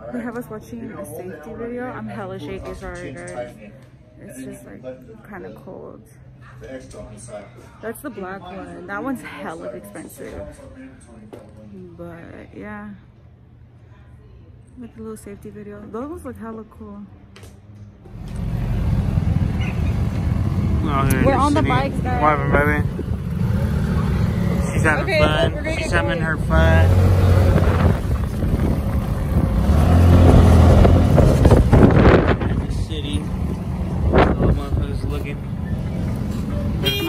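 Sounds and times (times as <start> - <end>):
vehicle driving: 18.0 - 37.0
small engine rumbling: 18.1 - 37.0
wind rush: 27.2 - 33.0.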